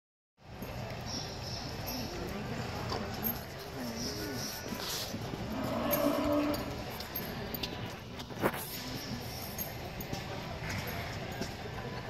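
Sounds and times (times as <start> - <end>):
steady background noise: 0.4 - 12.0
cow mooing: 5.5 - 6.8.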